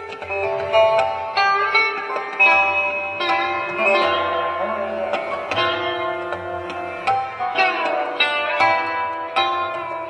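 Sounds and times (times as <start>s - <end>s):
sarod plucked notes: 0.0s - 10.0s.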